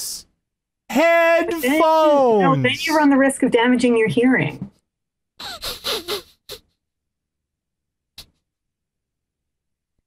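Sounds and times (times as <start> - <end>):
person laughing breathily: 5.4 - 6.7.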